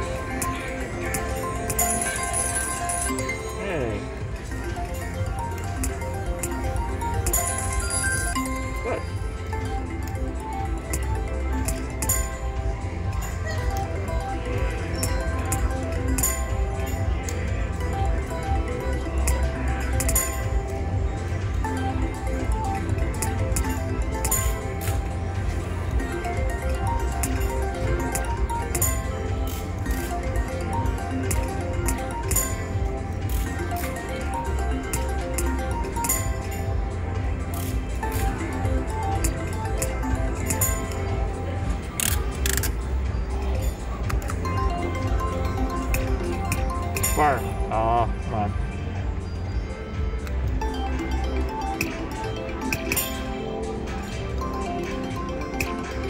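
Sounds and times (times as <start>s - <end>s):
slot machine click: 45.4s - 47.5s, 51.6s - 53.4s.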